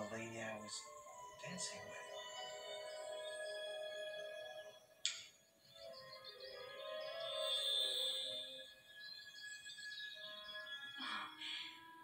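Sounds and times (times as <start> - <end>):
soft film score music: 0.0 - 12.0.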